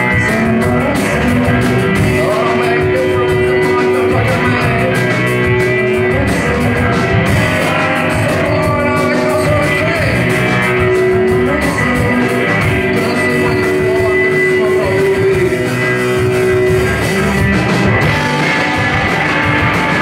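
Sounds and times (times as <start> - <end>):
distorted electric guitars: 0.0 - 20.0
drum kit: 0.0 - 20.0.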